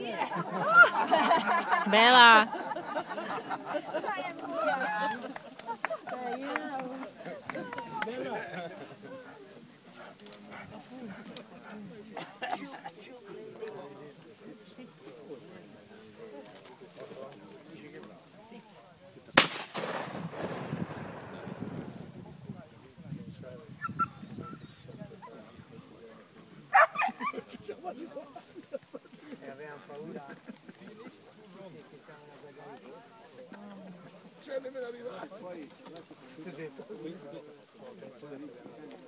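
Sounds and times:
quiet background talk: 0.0 - 39.0
faint dog sounds: 8.8 - 13.7, 23.7 - 27.7
dog barking: 26.7 - 27.2.

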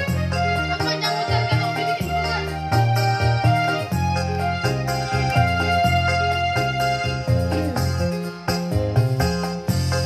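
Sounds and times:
electronic keyboard melody: 0.0 - 10.0
steady bass line: 0.0 - 10.0.

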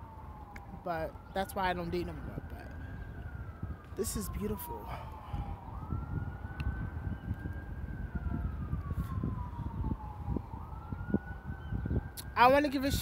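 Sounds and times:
emergency siren wailing: 0.0 - 13.0
low city rumble: 0.0 - 13.0
wind noise: 0.0 - 13.0.

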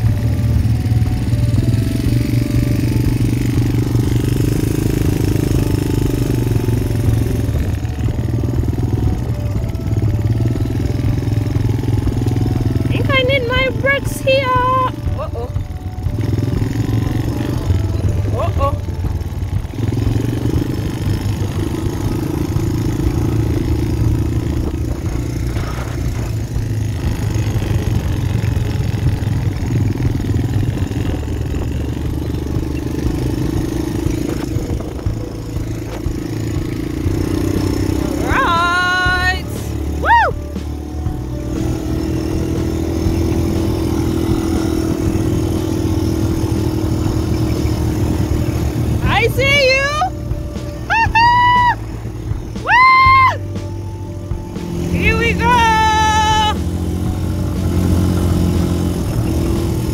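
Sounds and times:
quad bike engine running: 0.0 - 59.9
person calling out: 18.2 - 18.9, 38.2 - 40.4.

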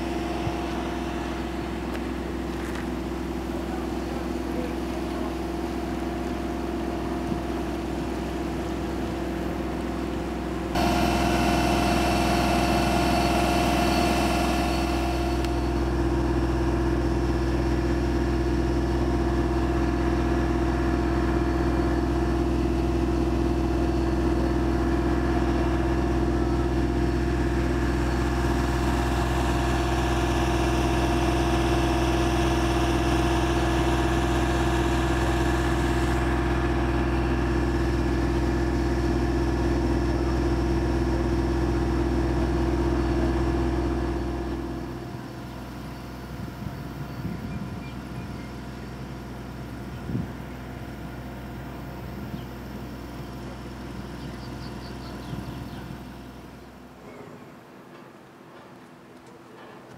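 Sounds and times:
machinery engine droning: 0.0 - 59.9.

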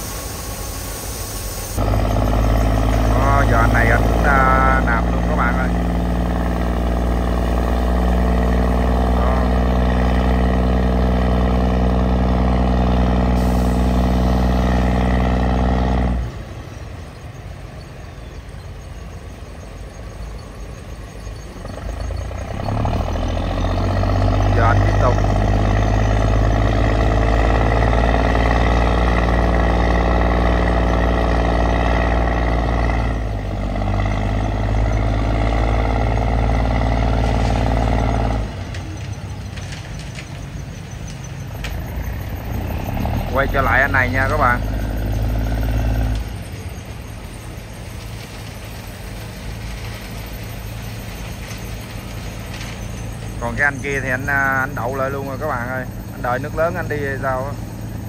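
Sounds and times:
diesel engine running hard: 0.0 - 58.0.

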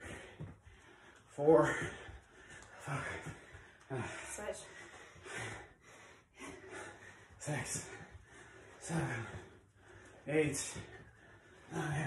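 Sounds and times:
person breathing hard: 0.0 - 12.0.

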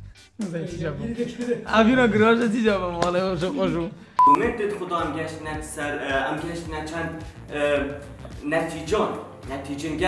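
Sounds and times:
short electronic beep: 4.2 - 4.4.

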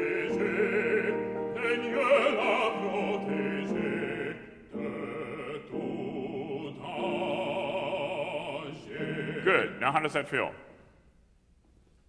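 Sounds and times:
man singing operatically: 0.0 - 10.4.

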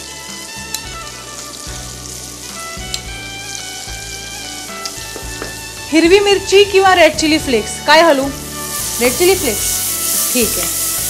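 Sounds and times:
onion and garlic sizzling: 0.0 - 11.0.

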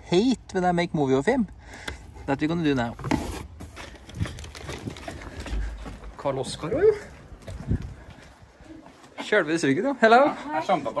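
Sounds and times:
paper bag handling: 2.9 - 5.6
footsteps: 3.0 - 9.4.

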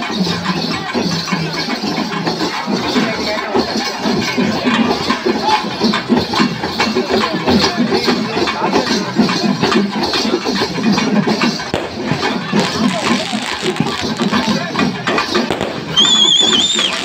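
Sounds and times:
crowd din: 0.0 - 17.0
drums beating: 0.0 - 17.0.

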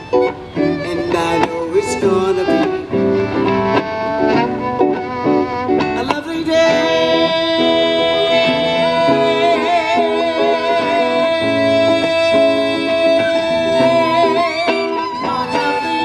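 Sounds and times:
acoustic guitar: 0.0 - 16.0
violin melody: 0.0 - 16.0.

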